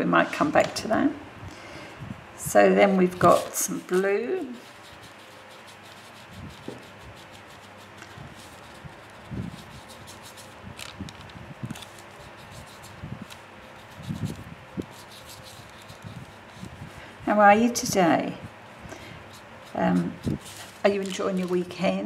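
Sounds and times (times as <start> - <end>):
paintbrush strokes on paper: 3.1 - 10.9, 11.7 - 21.8.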